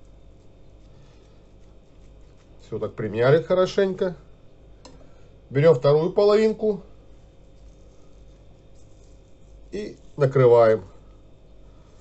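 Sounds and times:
fingers patting grated beetroot: 0.0 - 4.0.

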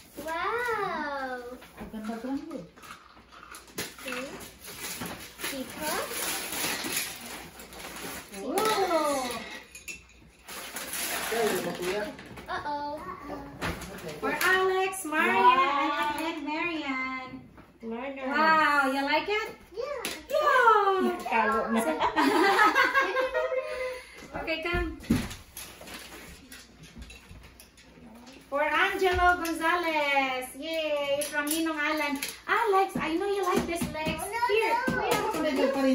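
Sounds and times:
wrapping paper rustling: 3.6 - 9.4, 10.4 - 12.3, 25.4 - 26.6
children's voices: 12.5 - 13.6, 34.0 - 35.9.

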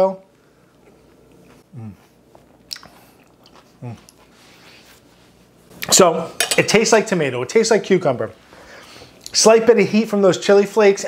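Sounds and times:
person chewing: 0.7 - 4.4
person humming mm: 1.7 - 2.2, 3.8 - 4.1.

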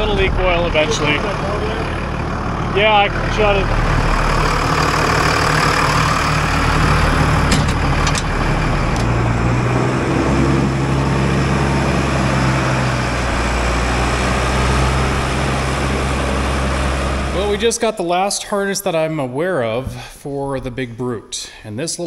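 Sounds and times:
diesel loader engine running: 0.0 - 18.3.

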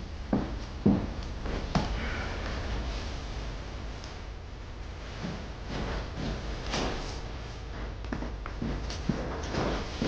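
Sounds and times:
low room hum: 0.0 - 10.0
footstep on wooden floor: 0.3 - 1.9
soft breathy sound: 1.8 - 3.3.

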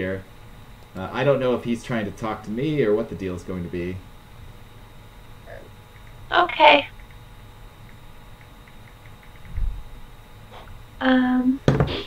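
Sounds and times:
low steady hum: 0.0 - 12.0
keyboard typing clicks: 7.9 - 9.6.

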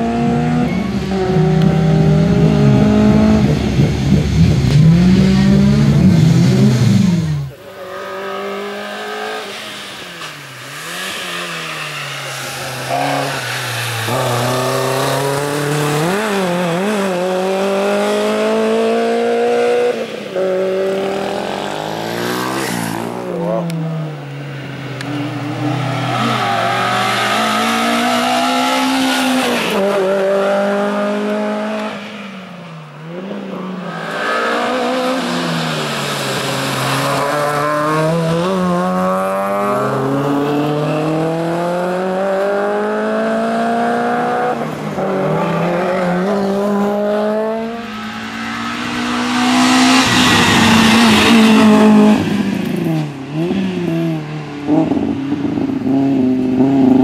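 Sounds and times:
car engine revving hard: 0.0 - 7.5, 33.1 - 57.0.

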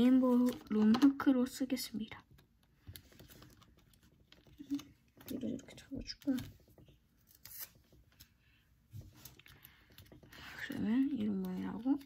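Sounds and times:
paper crinkling and tapping: 0.0 - 12.0.

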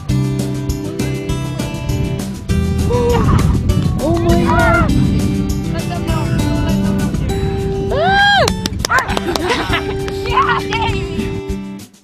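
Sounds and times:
music with steady beat: 0.0 - 12.0
person calling out: 4.0 - 4.9, 10.3 - 11.1.

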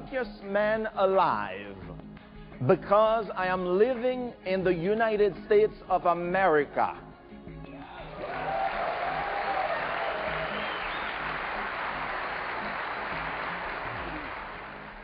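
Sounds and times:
soft background music: 0.0 - 15.0
audience applause: 8.0 - 15.0.

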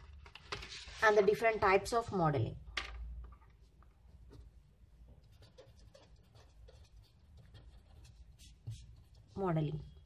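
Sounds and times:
pen scratching on paper: 5.2 - 9.9.

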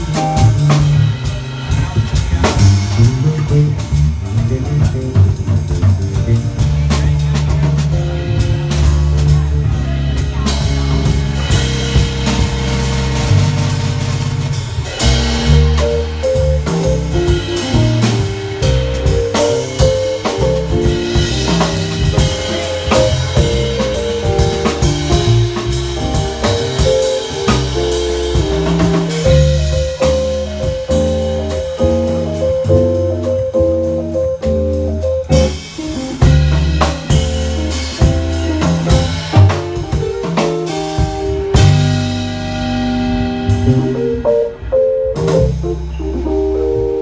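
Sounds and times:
drum kit groove: 0.0 - 47.0
electric bass line: 0.0 - 47.0
keyboards: 0.0 - 47.0.

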